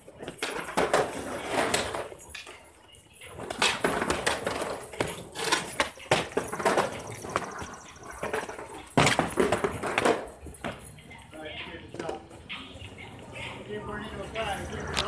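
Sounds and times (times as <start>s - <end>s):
skateboard wheels rolling: 0.0s - 11.1s
skateboard decks clacking: 0.0s - 11.2s
people's voices: 0.0s - 15.0s.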